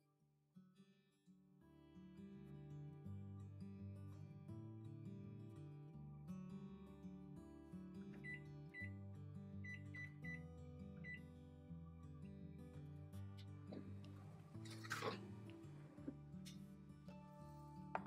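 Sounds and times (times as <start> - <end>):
background music: 2.1 - 18.0
microwave keypad beeps: 8.2 - 8.9, 9.6 - 10.4.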